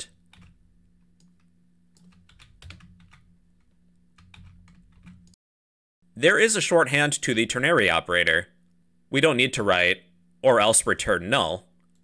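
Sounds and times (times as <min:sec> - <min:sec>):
faint low hum: 0:00.0 - 0:05.4, 0:06.0 - 0:12.0
keyboard keys clicking: 0:01.2 - 0:03.2, 0:04.2 - 0:05.4.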